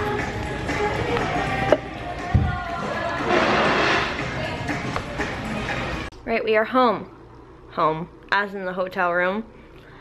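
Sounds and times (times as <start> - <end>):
restaurant voices: 0.7 - 6.1.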